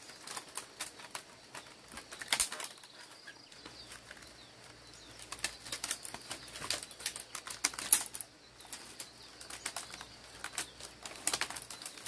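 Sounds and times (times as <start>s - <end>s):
bamboo strips rustling and clicking: 0.0s - 12.0s.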